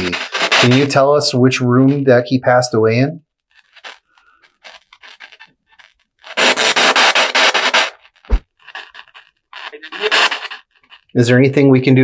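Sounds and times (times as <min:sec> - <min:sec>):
radio static sweeping: 0:00.0 - 0:01.0, 0:03.6 - 0:11.1
stuttering rush of static: 0:00.0 - 0:02.1, 0:03.5 - 0:11.2.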